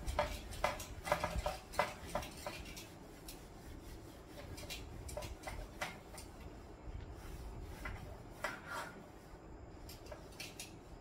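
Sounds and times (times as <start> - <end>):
eraser wiping a whiteboard: 0.0 - 11.0.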